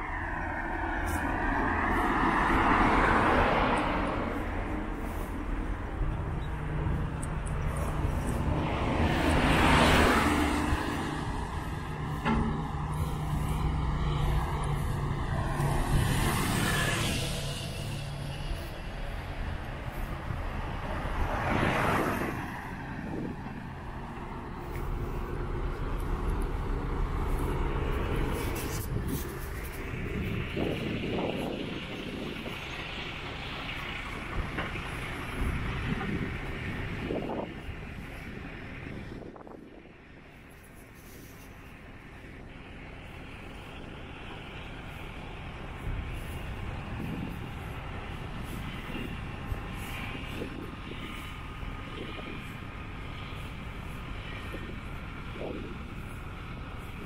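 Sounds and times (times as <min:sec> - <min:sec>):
steady low rush: 0:00.0 - 0:57.0
wind buffeting microphone: 0:00.0 - 0:57.0.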